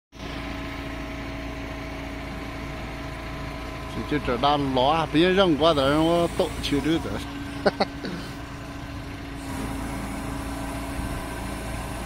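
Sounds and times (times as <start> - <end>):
diesel engine running: 0.1 - 12.0.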